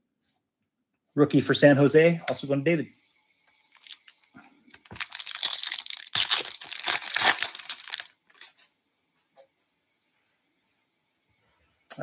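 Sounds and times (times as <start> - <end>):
foil wrapper tearing and crinkling: 3.8 - 8.6.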